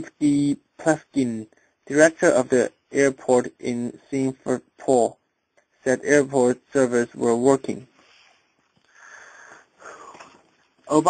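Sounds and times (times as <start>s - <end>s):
man speaking: 0.0s - 5.2s, 5.8s - 7.9s
man breathing in: 8.0s - 10.4s.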